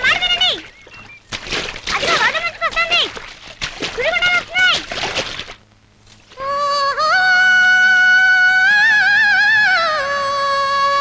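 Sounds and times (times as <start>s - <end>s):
person singing long notes: 6.3s - 11.0s.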